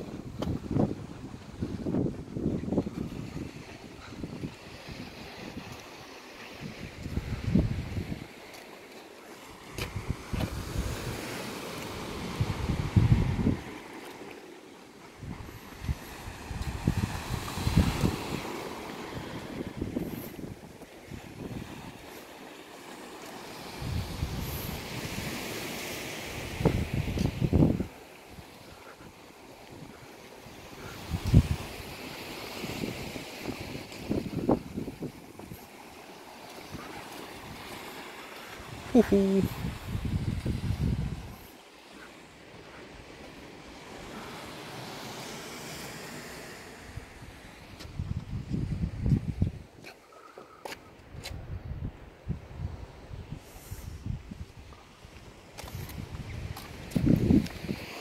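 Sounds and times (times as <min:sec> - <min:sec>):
wind buffeting microphone: 0:00.0 - 0:06.0, 0:06.6 - 0:08.4, 0:09.7 - 0:13.8, 0:15.2 - 0:22.2, 0:23.6 - 0:36.0, 0:36.6 - 0:41.5, 0:46.9 - 0:49.9, 0:50.9 - 0:57.9
sea surf: 0:00.0 - 0:51.2, 0:51.9 - 0:58.0.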